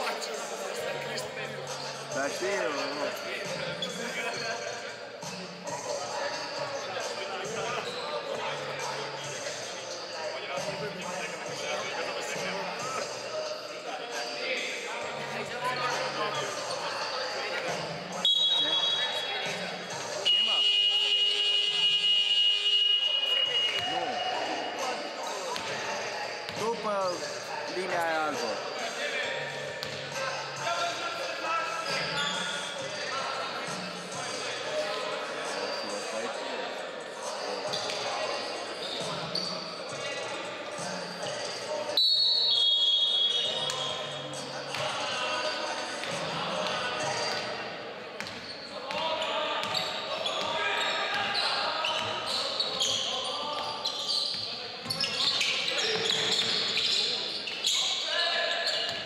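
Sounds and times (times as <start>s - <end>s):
voices echoing: 0.0s - 59.0s.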